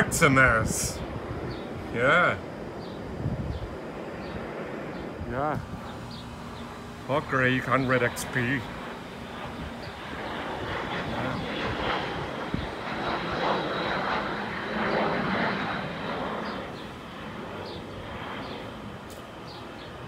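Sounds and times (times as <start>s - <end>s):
jet engines passing overhead: 0.0s - 20.0s
thin high engine whine: 0.0s - 20.0s.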